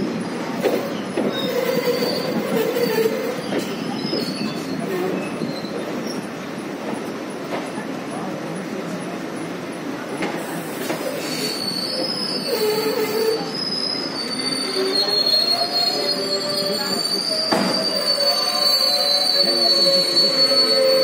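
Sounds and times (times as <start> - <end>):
train wheels squealing on rails: 0.0 - 21.0.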